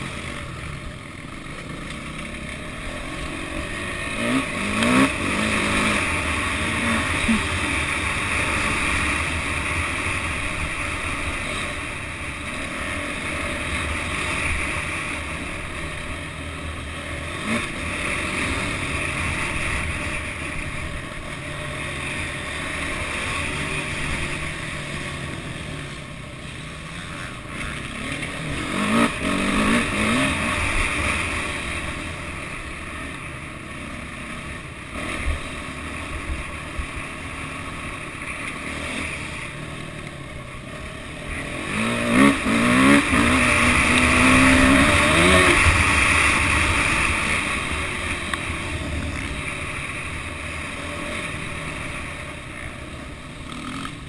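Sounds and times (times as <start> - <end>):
motocross bike engine revving: 0.0 - 54.0.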